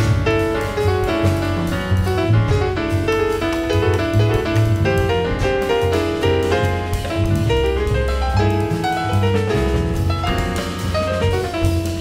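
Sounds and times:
acoustic piano playing: 0.0 - 12.0
double bass: 0.0 - 12.0
drums: 0.0 - 12.0.

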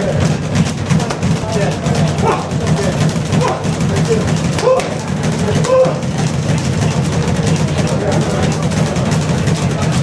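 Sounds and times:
fast clatter of strikes: 0.0 - 10.0.

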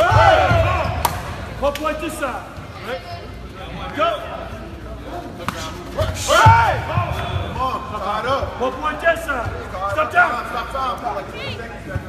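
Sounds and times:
men shouting: 0.0 - 1.0, 6.0 - 7.3.

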